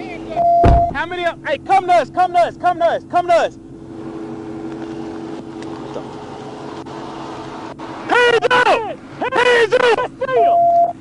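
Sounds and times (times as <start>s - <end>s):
vehicle engine idling: 0.0s - 11.0s
faint held tone: 0.2s - 1.1s, 10.4s - 11.0s.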